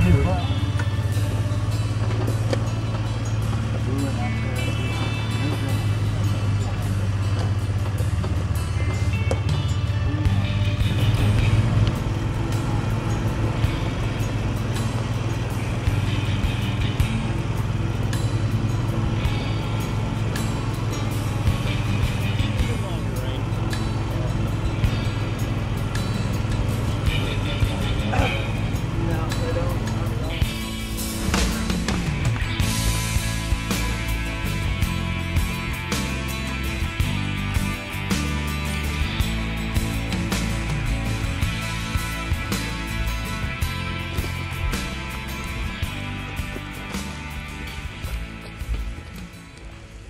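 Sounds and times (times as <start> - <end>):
vehicle engine running: 0.0 - 50.0.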